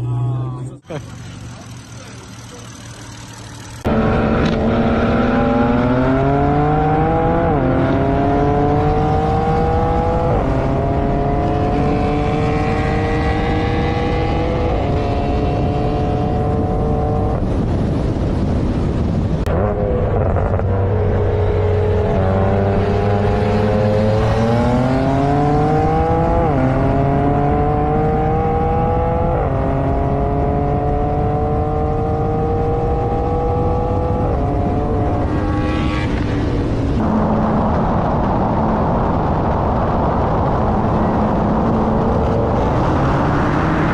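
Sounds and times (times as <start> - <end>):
car engine at full throttle: 0.0 - 43.9.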